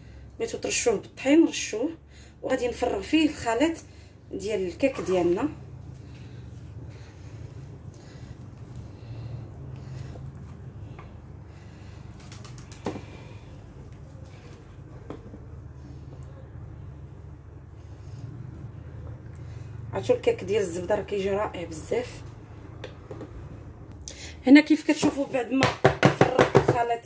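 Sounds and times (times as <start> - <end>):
low steady hum: 0.0 - 25.5.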